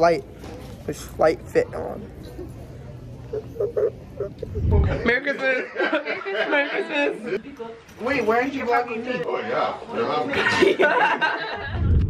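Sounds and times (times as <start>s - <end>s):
deep rumble: 4.4s - 5.0s, 11.7s - 12.0s.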